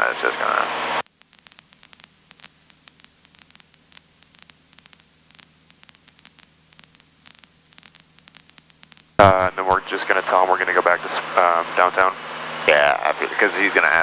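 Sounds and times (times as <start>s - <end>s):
static hiss: 0.1s - 14.0s
low hum: 0.5s - 14.0s
small crackling clicks: 1.0s - 9.2s.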